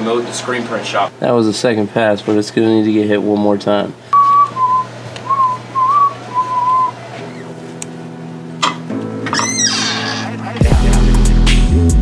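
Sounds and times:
person whistling a tune: 4.2 - 7.0.

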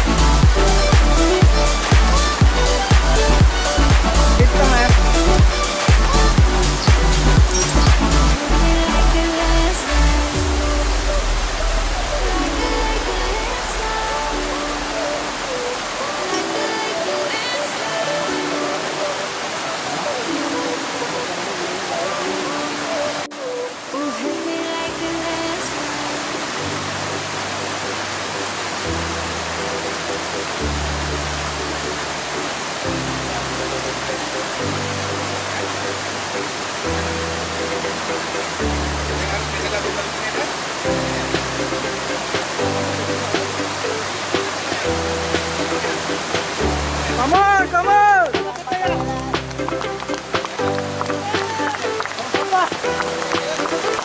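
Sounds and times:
deep bass line: 0.0 - 15.9
waterfall rushing: 0.0 - 54.0.

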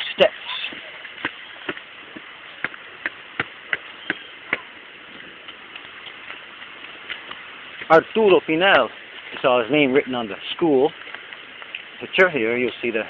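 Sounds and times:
steady background hiss: 0.0 - 13.0
footsteps on rock steps: 0.2 - 10.0.

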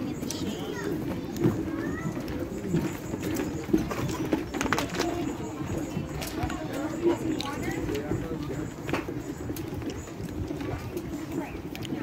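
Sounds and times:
faint voices: 0.0 - 12.0
birds calling: 1.8 - 11.8.

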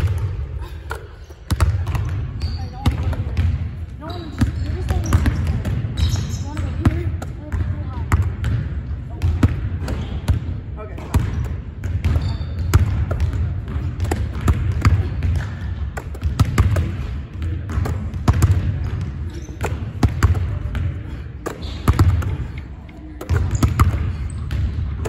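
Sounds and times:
basketballs bouncing on wooden floor: 0.0 - 25.0
balls smacking into hands: 12.8 - 19.0.

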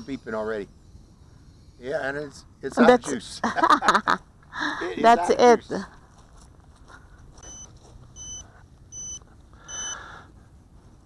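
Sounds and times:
short high-pitched beeps: 7.4 - 10.0.

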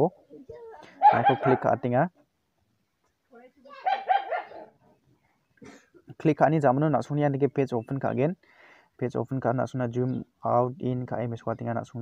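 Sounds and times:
dog barking: 1.0 - 1.8, 3.8 - 4.7.

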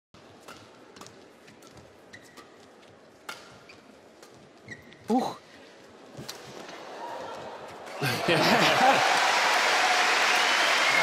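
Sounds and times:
racket hitting shuttlecock: 0.4 - 2.5, 3.2 - 4.4
shoe squeaks on court: 2.1 - 2.6, 4.6 - 5.1.

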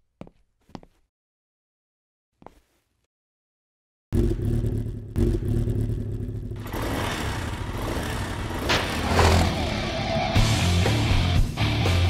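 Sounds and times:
rising whine: 4.2 - 11.1
motorcycle engine revving: 4.2 - 11.2.

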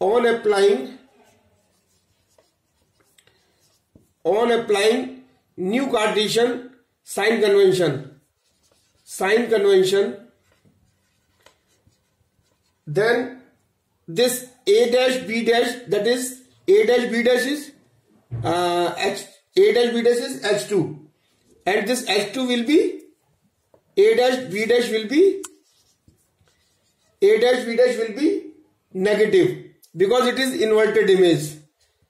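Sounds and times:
marker pen writing on whiteboard: 0.8 - 4.8, 8.0 - 17.4, 21.8 - 28.1.

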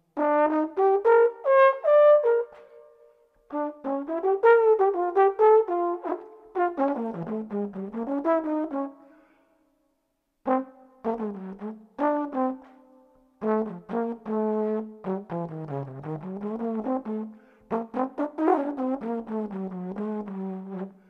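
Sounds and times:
trombone jazz solo: 0.2 - 2.6, 3.5 - 8.9, 10.5 - 12.7, 13.4 - 21.0.

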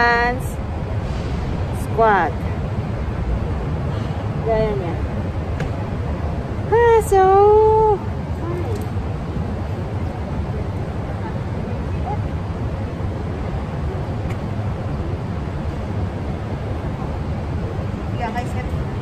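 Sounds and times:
low urban rumble: 0.0 - 19.0.

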